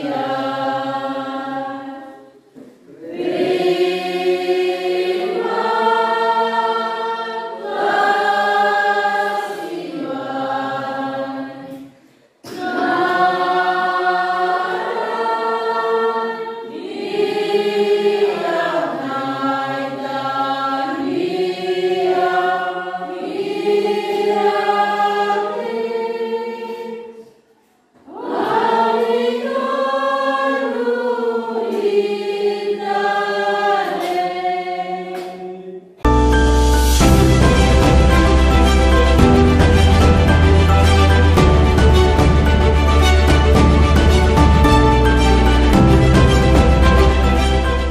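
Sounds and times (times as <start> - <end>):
congregation singing a hymn: 0.0 - 47.9.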